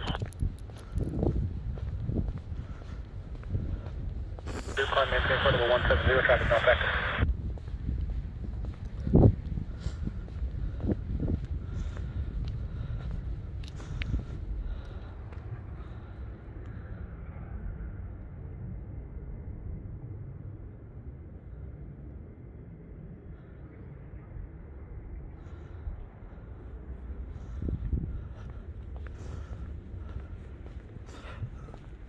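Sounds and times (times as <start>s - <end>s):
wind rumbling on microphone: 0.0s - 32.0s.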